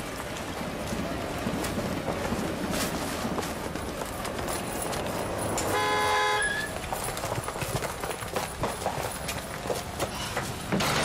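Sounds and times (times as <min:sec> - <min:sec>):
footsteps: 0:00.0 - 0:11.0
street noise: 0:00.0 - 0:11.0
vehicle horn toot: 0:05.7 - 0:06.8.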